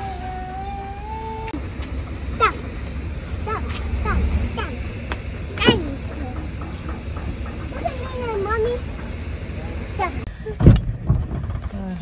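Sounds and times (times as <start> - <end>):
child's high voice: 0.0 - 1.6, 2.4 - 2.7, 3.4 - 4.8.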